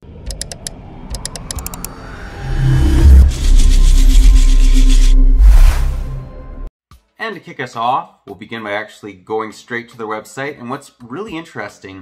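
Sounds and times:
deep bass music hit: 0:02.0 - 0:06.7.

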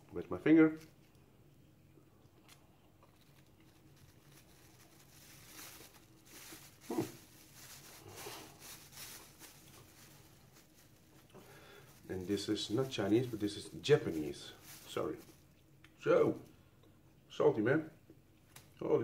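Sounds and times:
plastic bag crinkling: 0:02.5 - 0:15.5.

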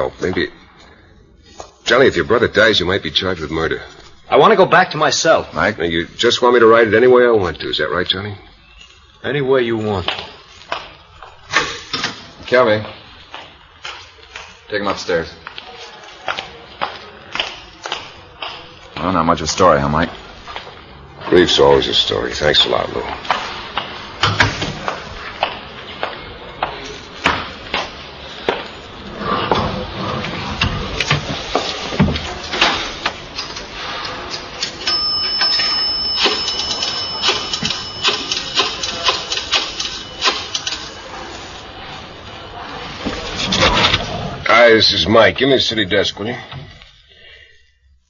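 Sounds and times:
footsteps walking: 0:12.8 - 0:14.7, 0:20.2 - 0:21.3
typewriter keys clacking: 0:34.8 - 0:40.9.

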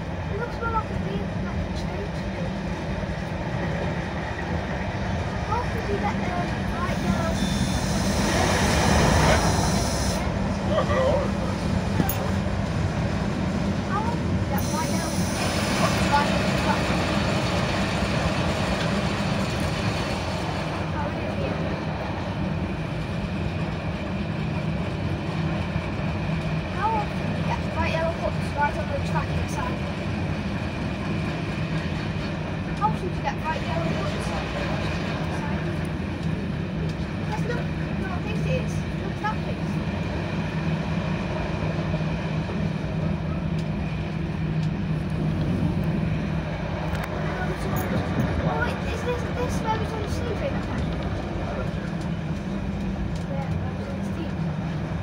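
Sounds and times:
diesel engine drone: 0:00.0 - 0:55.0
train wheels on rails: 0:00.0 - 0:55.0.

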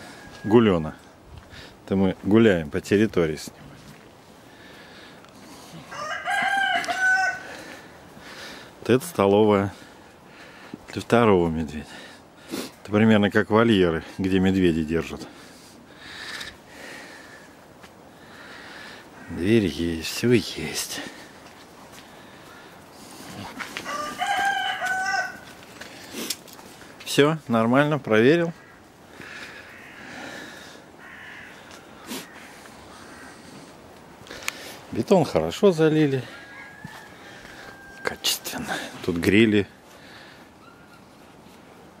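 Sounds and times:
rooster crowing: 0:00.0 - 0:00.8, 0:05.8 - 0:07.8, 0:23.8 - 0:25.6, 0:36.2 - 0:39.0.

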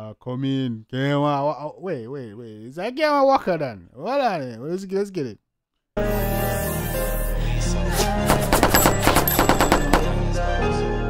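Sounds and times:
automatic gunfire: 0:08.3 - 0:10.2.

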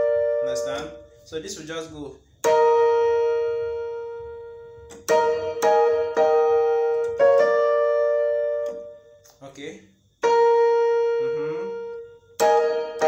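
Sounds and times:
electric piano gospel run: 0:00.0 - 0:01.1, 0:02.4 - 0:09.0, 0:10.2 - 0:13.0.

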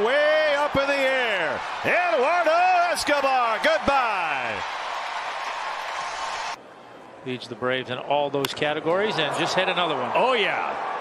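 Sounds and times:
crowd cheering: 0:00.0 - 0:06.6, 0:08.7 - 0:11.0.

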